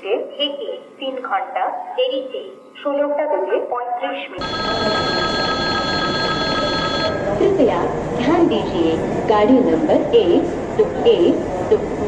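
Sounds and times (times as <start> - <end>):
public-address announcement: 0.0 - 12.0
high-pitched ringing tone: 4.4 - 7.6
train rumbling through station: 4.4 - 12.0.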